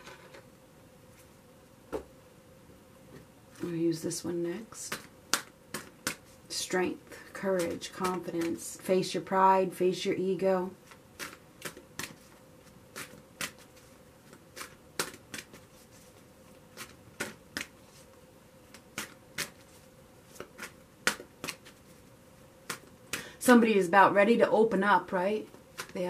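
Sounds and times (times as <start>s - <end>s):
cards being shuffled: 10.8s - 22.0s, 25.5s - 26.0s.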